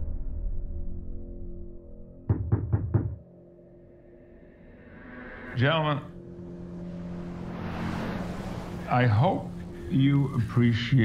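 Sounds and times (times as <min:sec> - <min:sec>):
quick hard knocks: 0:02.3 - 0:03.2
low musical drone: 0:03.2 - 0:11.0.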